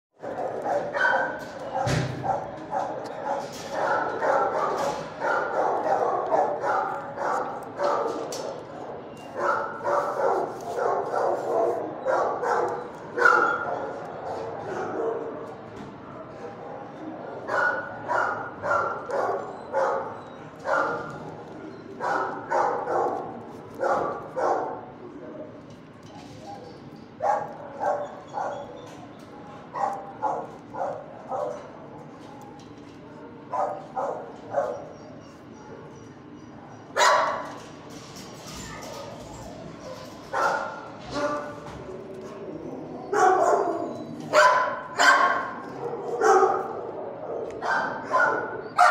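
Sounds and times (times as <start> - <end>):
dogs barking: 0.2 - 25.6, 26.4 - 32.5, 33.4 - 37.6, 39.5 - 48.9.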